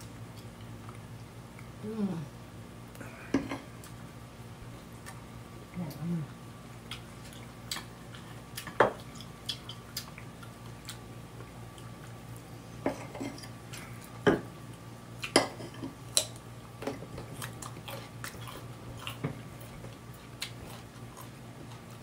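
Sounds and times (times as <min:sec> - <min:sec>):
steady low hum: 0:00.0 - 0:22.0
chewing: 0:06.7 - 0:22.0.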